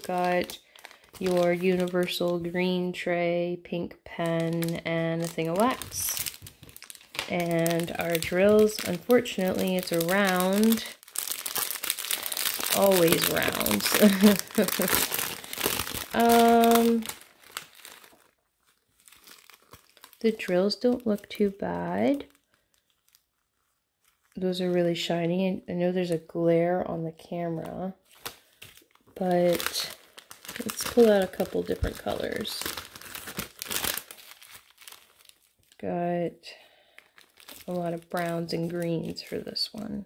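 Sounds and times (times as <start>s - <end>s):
plastic bags crinkling: 0.0s - 2.8s, 4.1s - 24.9s, 28.0s - 35.8s, 36.7s - 39.9s.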